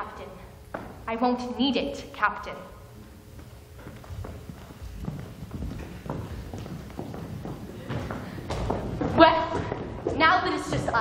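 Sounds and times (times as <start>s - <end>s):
footsteps on wooden stage: 0.6s - 1.2s, 2.8s - 11.0s.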